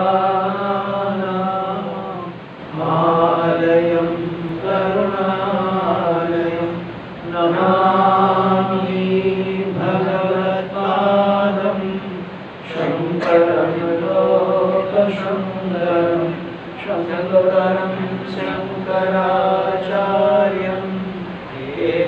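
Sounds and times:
man chanting: 0:00.0 - 0:22.0.

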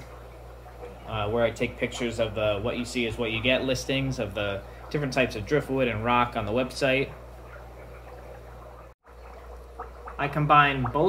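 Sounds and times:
aquarium equipment hum: 0:00.0 - 0:11.0
trickling water: 0:00.0 - 0:11.0.

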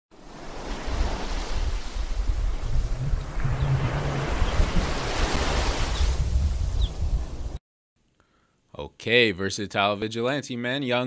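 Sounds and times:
wind: 0:00.1 - 0:07.6
ocean surf: 0:00.2 - 0:06.7
low rumble: 0:02.3 - 0:05.5.

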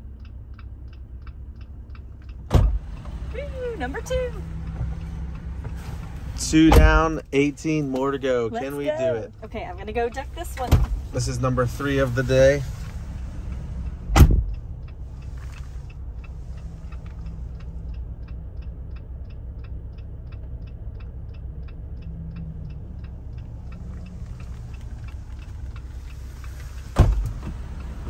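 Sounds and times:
car engine idling: 0:00.0 - 0:28.0
car door thump: 0:02.5 - 0:02.8, 0:06.6 - 0:07.2, 0:10.6 - 0:11.0, 0:14.1 - 0:14.5, 0:27.0 - 0:27.6
indicator ticking: 0:13.5 - 0:26.9.

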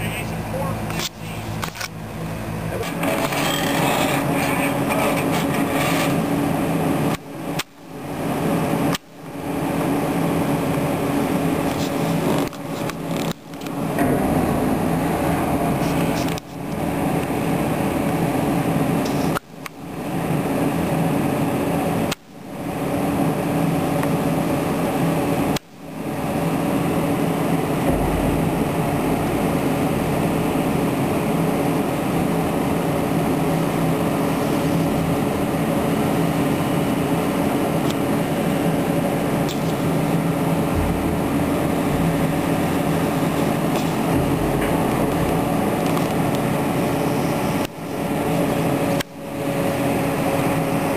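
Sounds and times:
diesel engine humming: 0:00.0 - 0:50.9.

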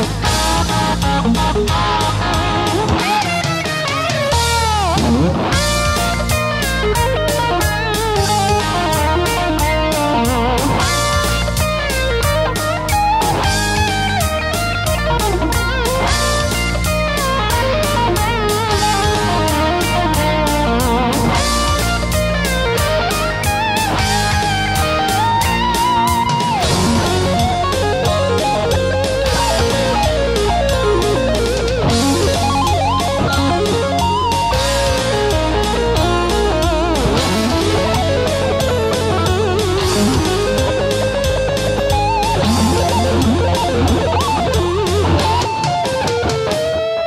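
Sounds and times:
electric guitar lead line: 0:00.0 - 0:47.0
rock backing with beat and bass: 0:00.0 - 0:47.0.

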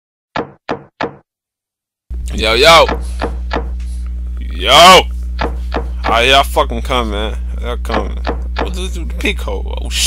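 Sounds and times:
knocking on door: 0:00.4 - 0:01.2, 0:02.8 - 0:03.7, 0:05.4 - 0:06.2, 0:07.9 - 0:08.8.

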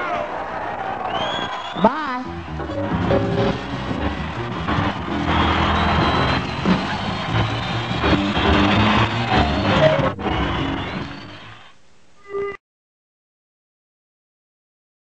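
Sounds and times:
crowd noise: 0:00.0 - 0:11.8
live band music: 0:01.8 - 0:11.6.

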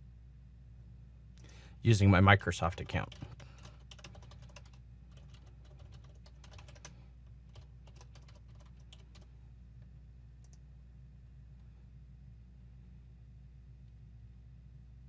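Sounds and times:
computer keyboard typing: 0:02.6 - 0:06.9, 0:07.5 - 0:09.3.

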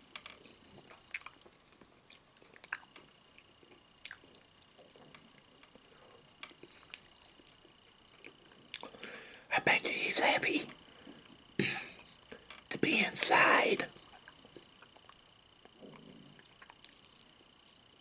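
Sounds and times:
eating fried chicken: 0:00.4 - 0:09.4, 0:13.6 - 0:18.0
man whispering: 0:09.5 - 0:10.8, 0:12.7 - 0:14.0.

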